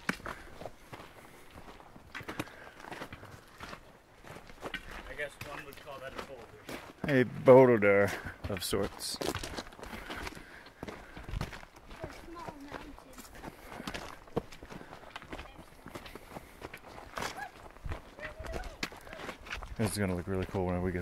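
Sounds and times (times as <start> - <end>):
footsteps on gravel trail: 0.0 - 21.0.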